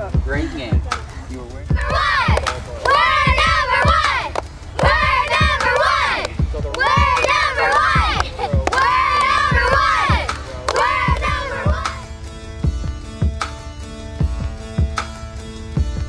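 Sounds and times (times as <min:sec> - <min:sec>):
girls clapping: 0:01.8 - 0:12.0
girls chanting a cheer: 0:01.8 - 0:12.1.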